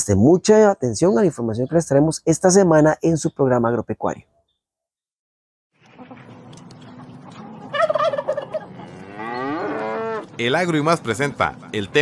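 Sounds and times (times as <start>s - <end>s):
turkey gobbling: 6.0s - 10.3s.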